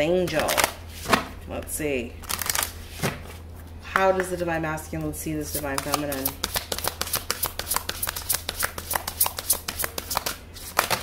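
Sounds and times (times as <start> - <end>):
cards being shuffled: 5.5 - 11.0.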